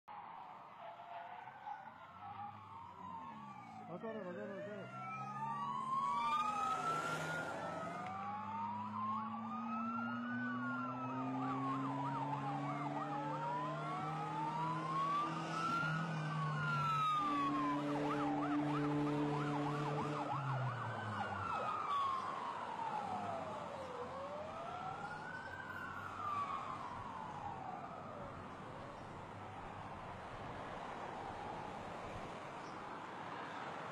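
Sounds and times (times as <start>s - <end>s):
emergency vehicle sirens wailing: 0.1s - 33.9s.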